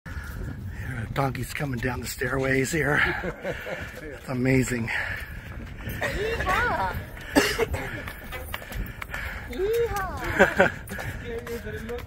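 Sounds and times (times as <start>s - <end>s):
hooves clopping on stone steps: 0.1s - 12.0s.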